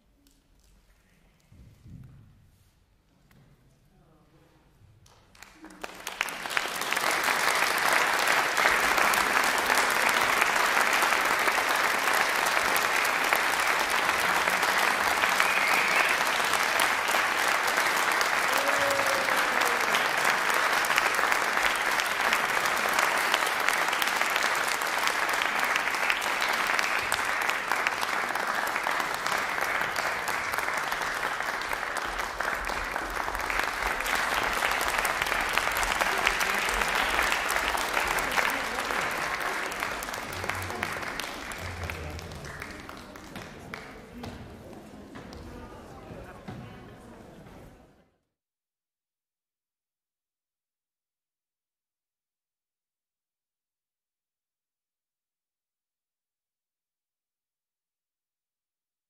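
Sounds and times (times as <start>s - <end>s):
audience applauding: 5.0s - 45.7s.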